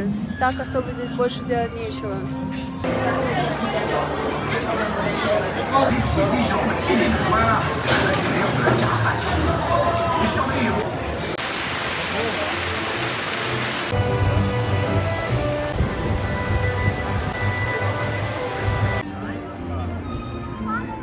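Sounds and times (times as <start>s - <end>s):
music: 0.0s - 10.8s, 12.2s - 21.0s.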